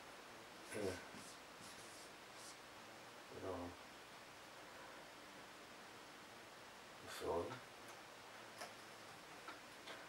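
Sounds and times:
faint high scratching: 0.6 - 2.6.

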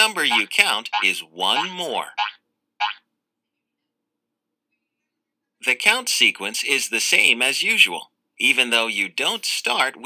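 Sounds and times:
cartoon sound effects: 0.1 - 3.0.

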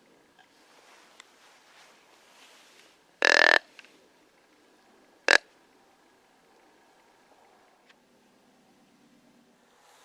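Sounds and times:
deer grunt call: 3.2 - 3.8.

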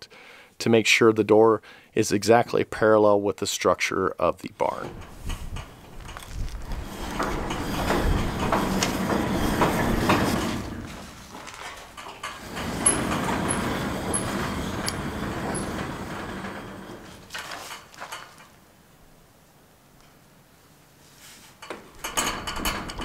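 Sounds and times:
sliding door rumbling on track: 4.7 - 18.2, 21.9 - 23.0.

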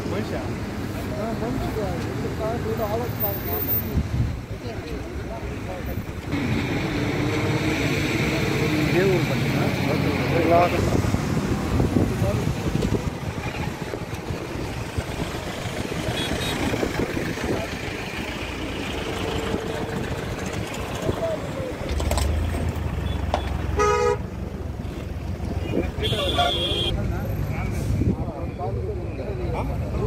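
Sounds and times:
highway traffic: 0.0 - 30.0
vehicle engine running: 12.1 - 25.6.

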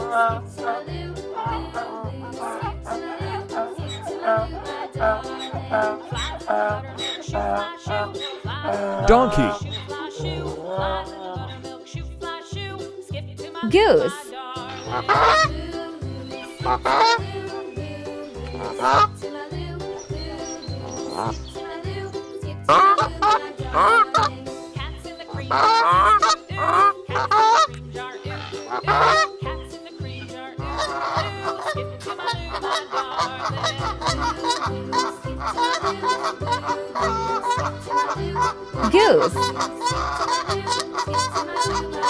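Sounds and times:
geese honking: 0.0 - 11.8, 14.6 - 42.0.

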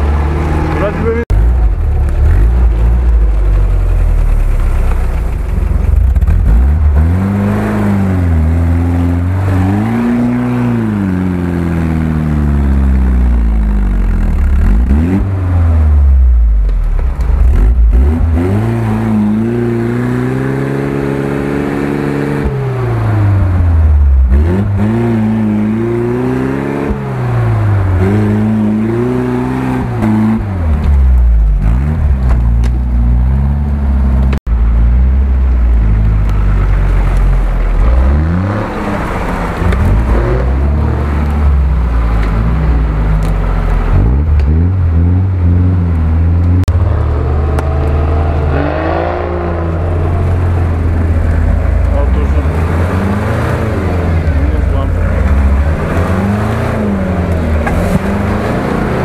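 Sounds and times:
off-road vehicle engine revving: 0.0 - 59.0.

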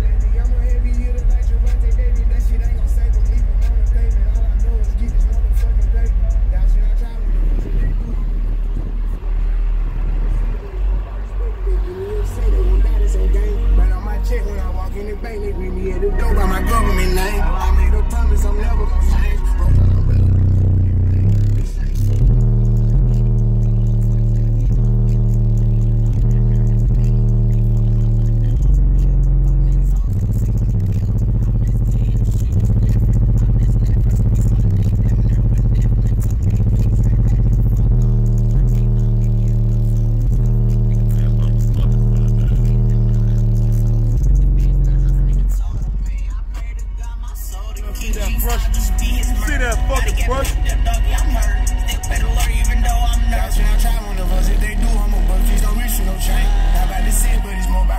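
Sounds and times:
loud rap music with heavy bass: 0.0 - 57.9.

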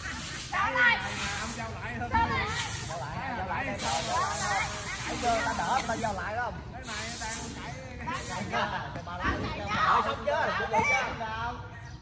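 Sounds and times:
high-pitched hiss: 0.0 - 1.8, 2.4 - 8.6
people talking and calling out: 0.0 - 12.0.

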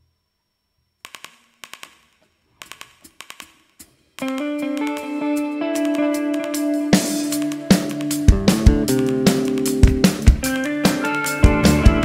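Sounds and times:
faint low hum: 0.0 - 1.6
rock band playing: 4.2 - 12.0.

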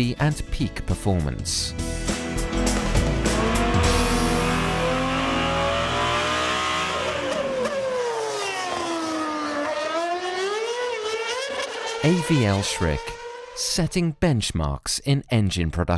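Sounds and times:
high-performance engine revving: 2.3 - 13.7.

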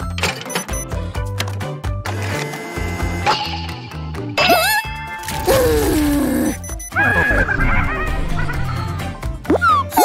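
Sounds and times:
background music: 0.0 - 10.0
cartoon falling tone: 4.4 - 8.4
warbling cartoon cry: 4.4 - 8.4.

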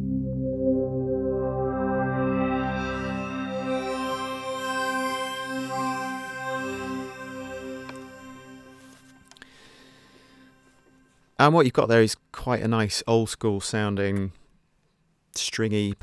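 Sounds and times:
synthesizer pad chord: 0.0 - 11.2.

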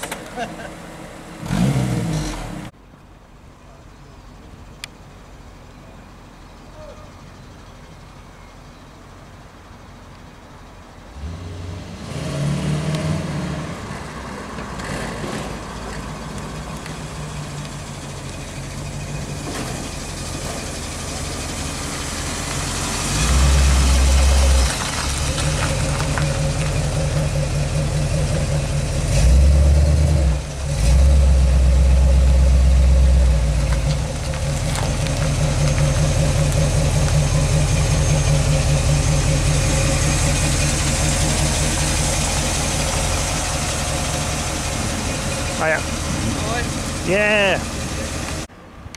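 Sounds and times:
pickup truck engine running: 15.5 - 48.5.

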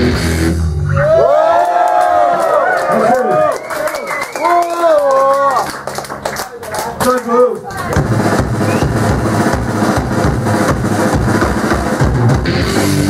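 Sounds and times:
punk band playing loud: 0.0 - 0.8, 7.8 - 13.0
fast pounding drums: 7.8 - 13.0.

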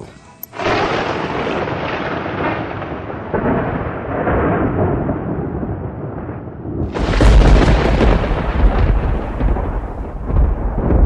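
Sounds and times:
rumbling thunder: 0.6 - 11.0.

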